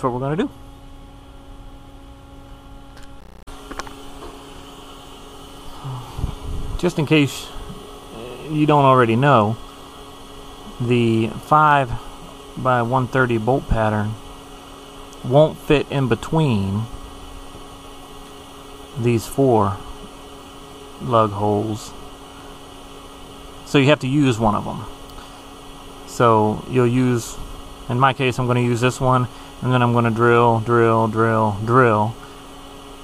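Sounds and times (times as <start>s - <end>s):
electrical hum: 0.0s - 33.0s.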